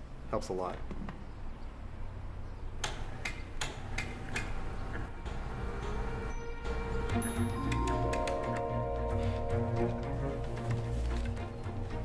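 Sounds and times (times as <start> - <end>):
sharp rhythmic ticking: 5.3 - 10.2.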